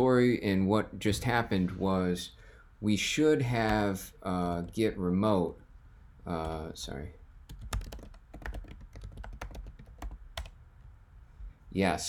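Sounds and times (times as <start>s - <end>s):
keyboard typing: 3.6s - 4.0s, 6.4s - 10.6s.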